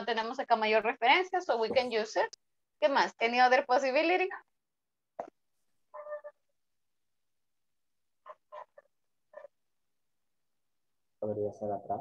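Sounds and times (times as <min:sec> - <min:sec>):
faint voice over video call: 0:11.2 - 0:12.0.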